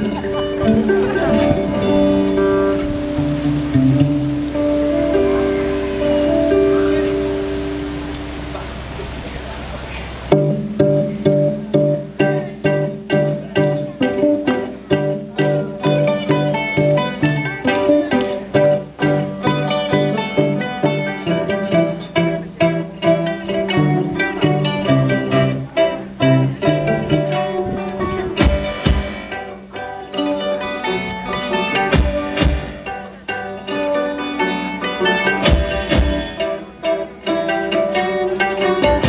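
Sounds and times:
bass line: 0.0 - 33.3, 34.1 - 39.0
acoustic guitar: 0.0 - 39.0
fiddle: 0.0 - 39.0
mandolin: 0.0 - 39.0
low drum thumps: 7.8 - 12.3, 28.3 - 29.4, 31.9 - 32.9, 35.4 - 36.4.

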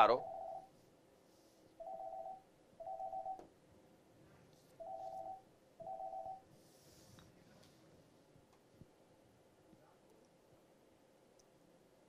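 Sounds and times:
telephone ringing faintly: 0.0 - 0.7, 1.8 - 3.5, 4.8 - 6.5.

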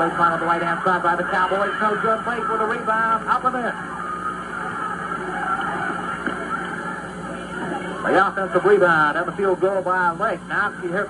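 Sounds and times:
crowd cheering and yelling: 0.0 - 8.8.

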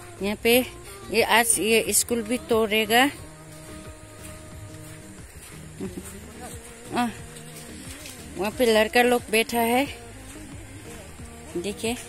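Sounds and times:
person speaking: 5.6 - 12.0.

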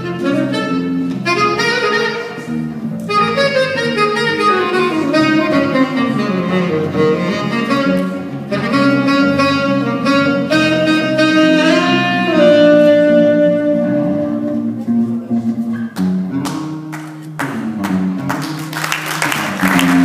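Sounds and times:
saxophone melody: 0.0 - 20.0
walking bass line: 0.0 - 20.0.

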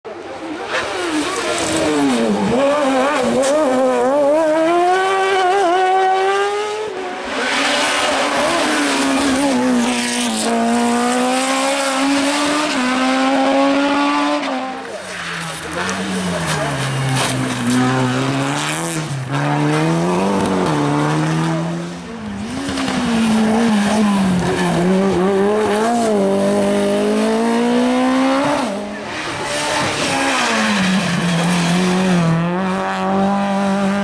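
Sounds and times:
race car engines accelerating: 0.1 - 34.0.

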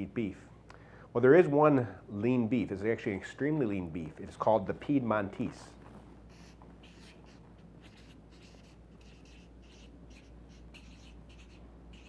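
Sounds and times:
marker writing on paper: 6.3 - 12.0.

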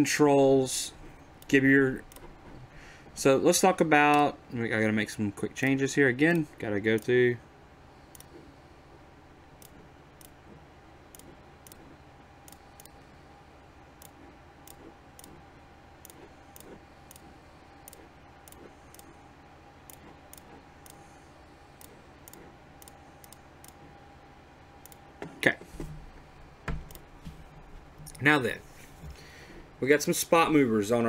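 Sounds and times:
faint steady hum: 0.0 - 31.0
computer mouse clicking: 1.4 - 2.3, 8.1 - 8.4, 11.1 - 13.0, 14.0 - 15.4, 16.0 - 19.2, 19.8 - 21.0, 21.8 - 23.8, 24.8 - 25.0.

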